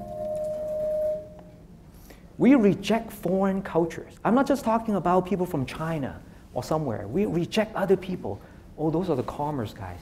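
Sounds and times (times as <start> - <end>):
steady ringing tone: 0.0 - 1.6.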